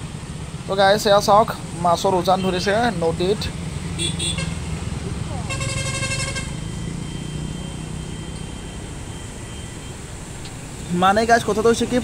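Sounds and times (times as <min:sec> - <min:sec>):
vehicle engine passing: 0:02.9 - 0:09.3
vehicle horn: 0:04.0 - 0:04.6, 0:05.5 - 0:06.6.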